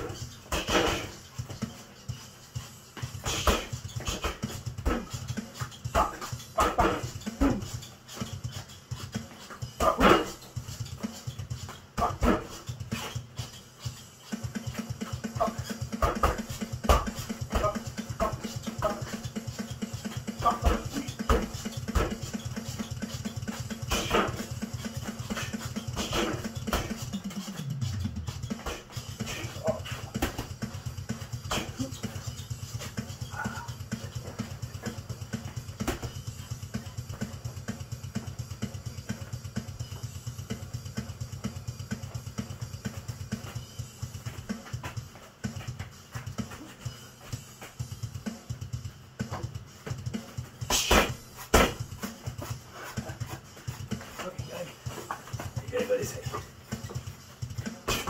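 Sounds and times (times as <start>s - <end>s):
background music with bass beat: 0.0s - 58.0s
punches thudding on bags: 9.8s - 10.4s, 12.0s - 13.0s, 15.4s - 19.2s, 23.8s - 27.1s, 28.5s - 30.7s, 50.7s - 52.3s, 57.6s - 58.0s.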